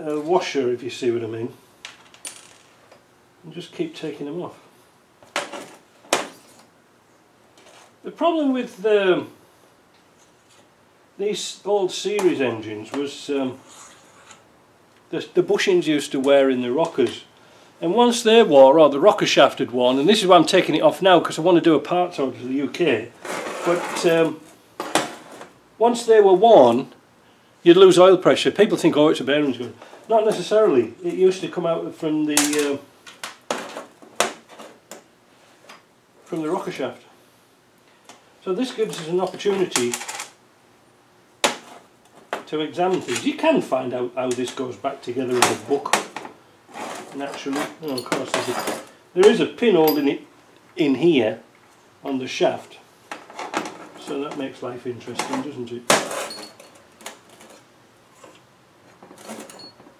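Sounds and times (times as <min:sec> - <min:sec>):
sharp metallic clinks: 0:49.8 - 0:50.2.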